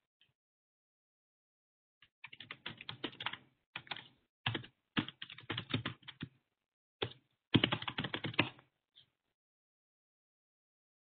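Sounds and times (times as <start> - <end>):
typing on computer keyboard: 2.2 - 6.3, 7.0 - 8.6.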